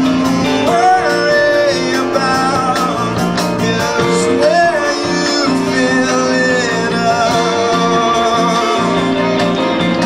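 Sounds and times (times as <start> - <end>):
drums: 0.0 - 10.0
electric guitars: 0.0 - 10.0
person singing: 0.4 - 10.0.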